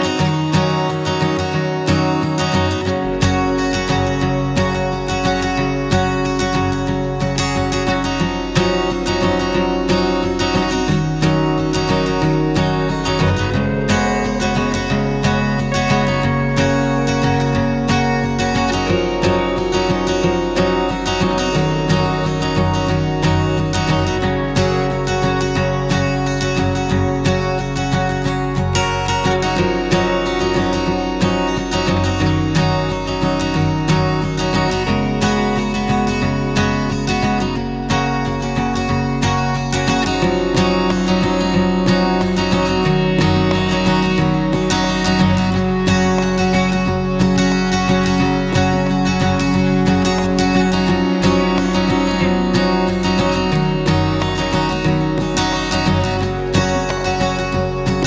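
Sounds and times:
strummed acoustic guitar: 0.0 - 58.0.

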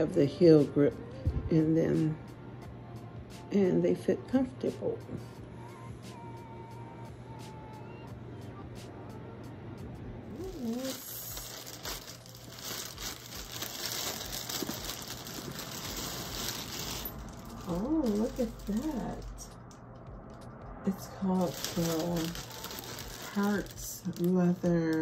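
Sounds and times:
plastic bag crinkling: 10.4 - 19.8, 20.9 - 25.0.

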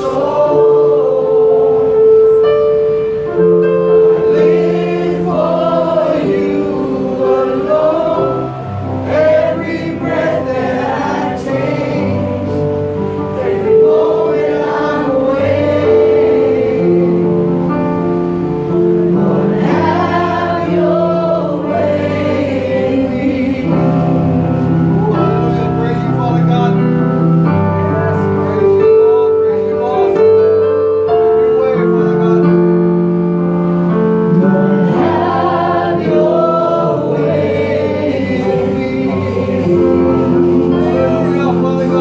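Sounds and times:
congregation singing gospel song: 0.0 - 42.0
sustained accompaniment: 0.0 - 42.0.

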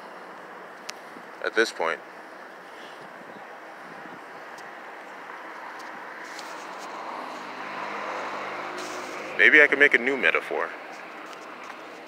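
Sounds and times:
vehicle engine and tyre noise: 0.0 - 12.0.

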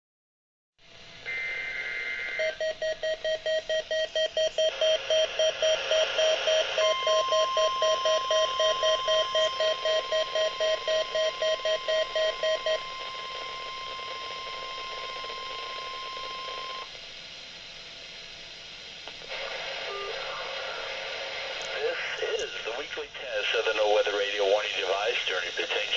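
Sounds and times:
radio hiss: 1.3 - 2.6, 18.2 - 25.9
rapid alarm beeps: 1.3 - 16.9
steady warning alarm tone: 1.3 - 16.9.

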